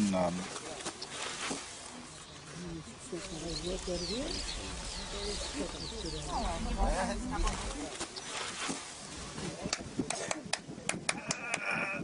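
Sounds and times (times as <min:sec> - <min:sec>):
people talking indistinctly: 0:02.5 - 0:08.1
low rumble: 0:03.2 - 0:08.0.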